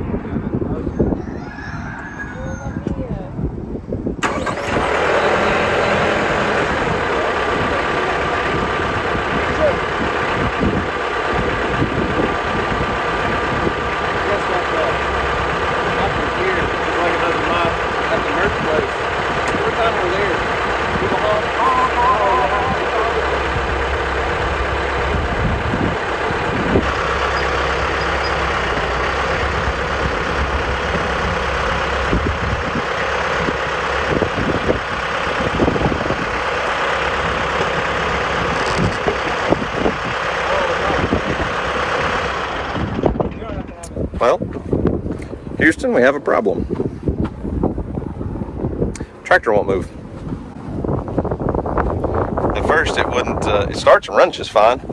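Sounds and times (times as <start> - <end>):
diesel tractor engine idling: 3.4 - 54.9.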